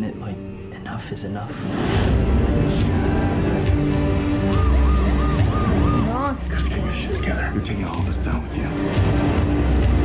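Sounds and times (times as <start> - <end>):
trailer music with deep bass: 0.0 - 10.0.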